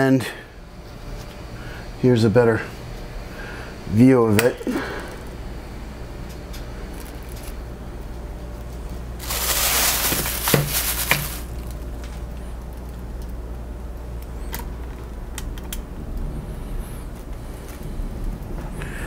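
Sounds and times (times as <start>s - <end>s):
steady low hum: 0.0s - 19.0s
plastic plate rustling: 9.2s - 11.8s.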